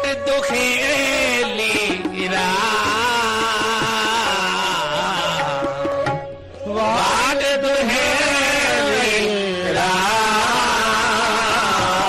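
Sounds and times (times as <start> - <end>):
harmonium accompaniment: 0.0 - 12.0.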